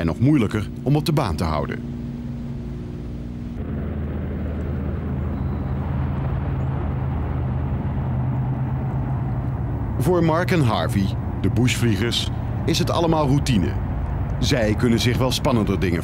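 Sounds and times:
propeller plane engines droning: 0.0s - 16.0s.

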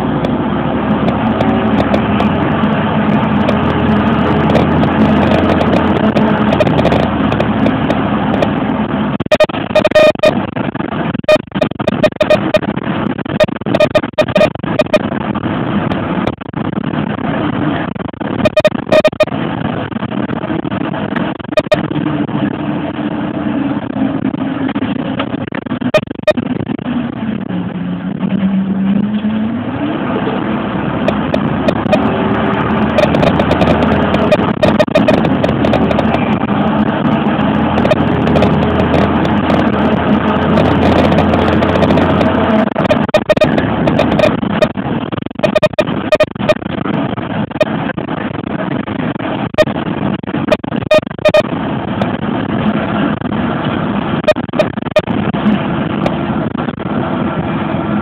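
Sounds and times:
bus engine: 0.0s - 58.0s
road noise: 0.0s - 58.0s.

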